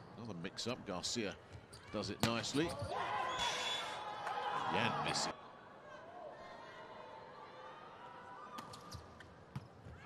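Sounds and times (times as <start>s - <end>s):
faint arena crowd: 0.0s - 10.0s.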